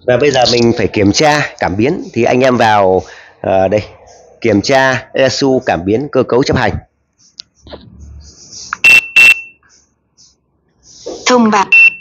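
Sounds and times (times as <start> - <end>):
high-pitched beeps: 7.6 - 10.4, 11.4 - 12.0.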